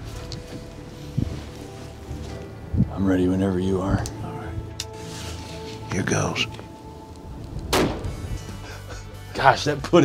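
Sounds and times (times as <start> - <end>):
soft background music: 0.0 - 10.0
rifle shot: 7.7 - 8.2.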